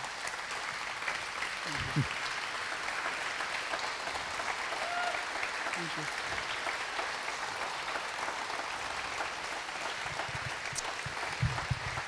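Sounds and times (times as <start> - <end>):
congregation applauding: 0.0 - 12.0.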